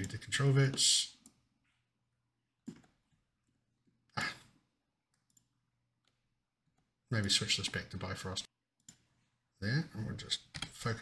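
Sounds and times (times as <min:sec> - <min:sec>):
computer mouse clicks: 0:05.1 - 0:06.9, 0:08.8 - 0:09.1.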